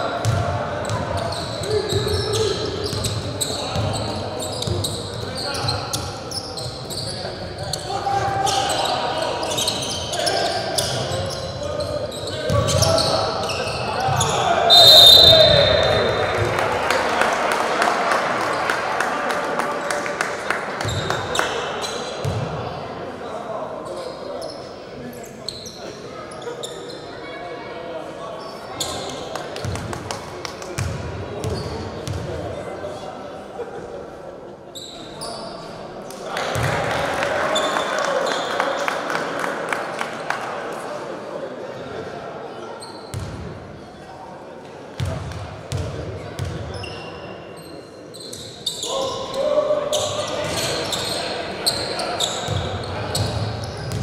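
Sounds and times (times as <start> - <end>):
sneakers squeaking: 0.2 - 16.4, 23.8 - 27.4, 28.4 - 29.8, 30.8 - 32.3, 34.7 - 35.8, 42.6 - 44.1, 45.0 - 54.0
short high shoe squeaks: 34.8 - 35.5, 46.7 - 49.3.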